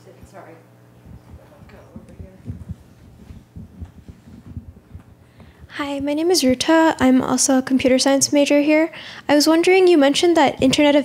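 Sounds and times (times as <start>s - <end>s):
steady low hum: 0.0s - 11.0s
faint low thumps: 0.9s - 8.0s.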